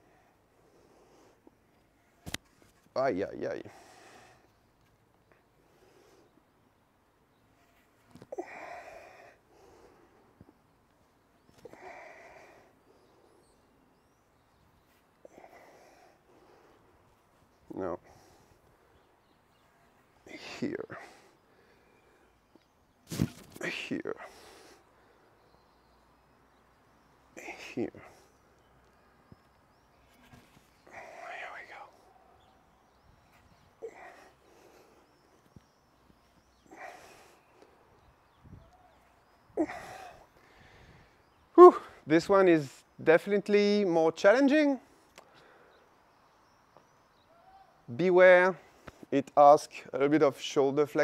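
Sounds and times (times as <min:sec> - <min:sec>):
faint bird chirps: 0:00.0 - 0:42.1, 0:44.8 - 0:48.0
man exhaling with effort: 0:08.3 - 0:10.0.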